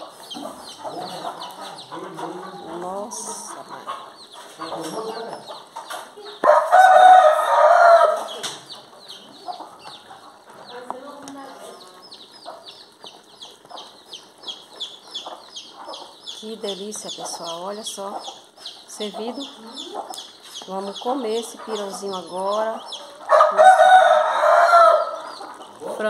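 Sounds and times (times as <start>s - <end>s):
chicks peeping: 0.0s - 26.0s
hen clucking: 0.0s - 26.0s
rooster crowing: 6.4s - 8.4s, 23.2s - 25.2s.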